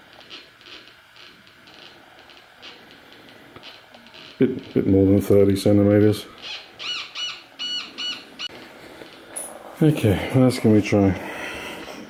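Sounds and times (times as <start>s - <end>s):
metal detector high-pitched beeps: 6.4s - 8.5s.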